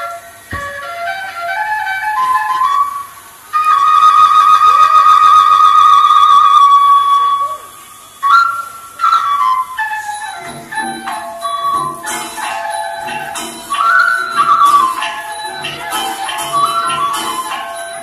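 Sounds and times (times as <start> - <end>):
flute-like wind instrument melody: 0.0 - 18.0.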